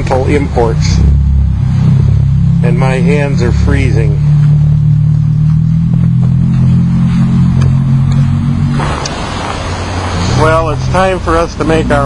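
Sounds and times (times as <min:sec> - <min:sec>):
low rumble with hum: 0:00.0 - 0:12.0
loud rushing noise: 0:00.6 - 0:12.0.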